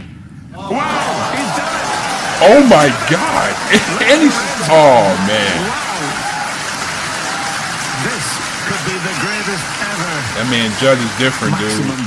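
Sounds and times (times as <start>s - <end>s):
audience applauding: 0.8s - 12.0s.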